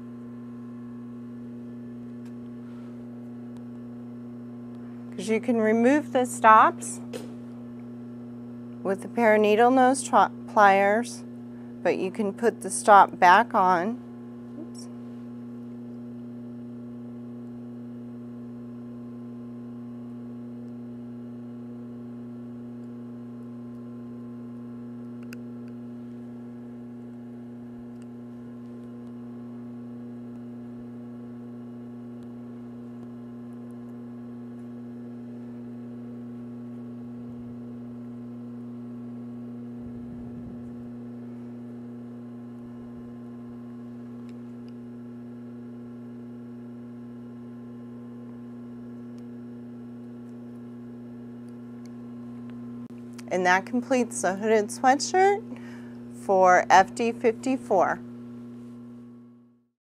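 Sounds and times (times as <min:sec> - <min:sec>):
electrical hum: 0:00.0 - 0:59.7.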